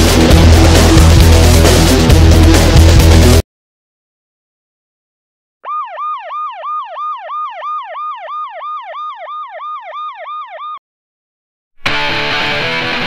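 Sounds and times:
siren yelp: 5.6 - 10.8.

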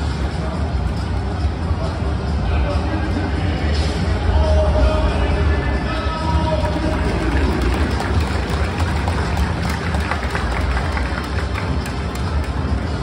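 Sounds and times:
crowd noise: 0.0 - 13.0
music over loudspeakers with heavy bass: 0.0 - 13.0.

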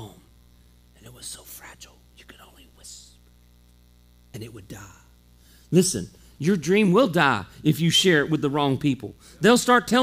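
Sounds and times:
man whispering: 0.0 - 0.3, 0.9 - 3.3, 4.3 - 6.4
faint electrical hum: 0.0 - 10.0.

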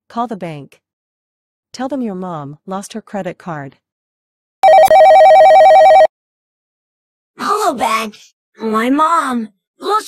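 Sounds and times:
telephone ringing electronic trill: 4.6 - 6.1.

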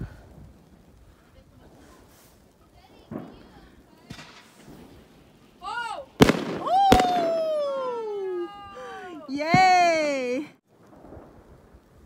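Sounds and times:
firework bangs: 0.5 - 8.8
firework whistle sliding downward: 6.6 - 8.5.

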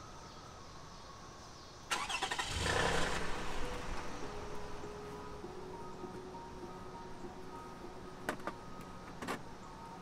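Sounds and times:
car engine starting and running: 1.9 - 5.2.

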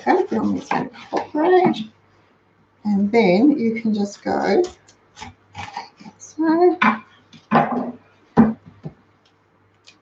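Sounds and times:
knock on chopping board: 6.8 - 9.0.

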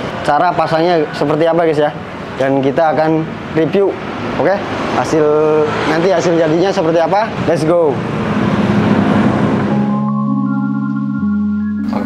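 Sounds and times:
sustained music chords: 9.1 - 12.0.

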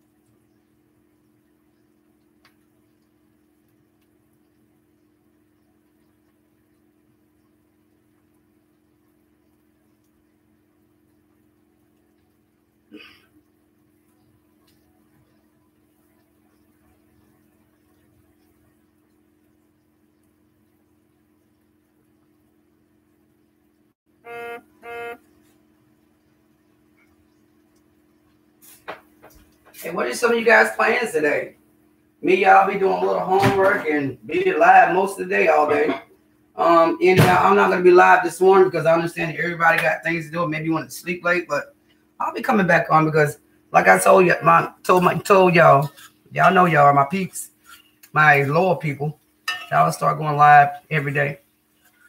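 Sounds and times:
faint steady hum: 0.0 - 52.0
short beeps: 24.3 - 25.2.

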